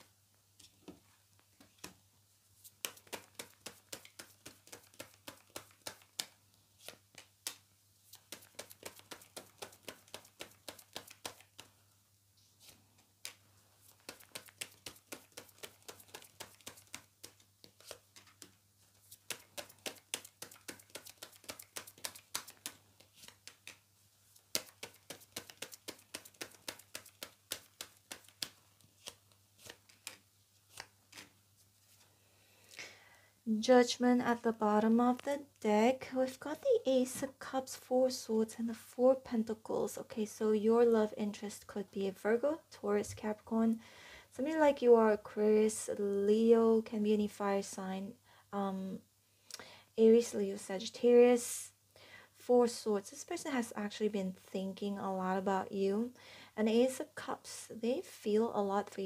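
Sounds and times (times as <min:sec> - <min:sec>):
cards being shuffled: 0:02.6 - 0:11.8, 0:12.6 - 0:32.1.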